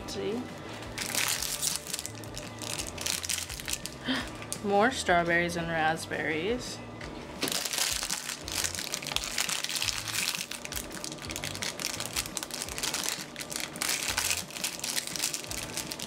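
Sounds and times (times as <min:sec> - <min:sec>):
plastic wrapper crinkling: 0:01.0 - 0:04.6, 0:07.5 - 0:16.0.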